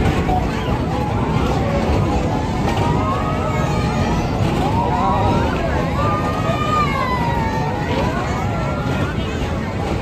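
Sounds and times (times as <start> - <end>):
low rumble of spinning ride: 0.0 - 10.0
people's voices: 0.0 - 10.0.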